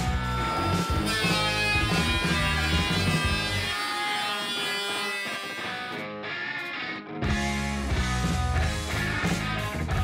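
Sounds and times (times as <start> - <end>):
background music with guitar: 0.0 - 10.0.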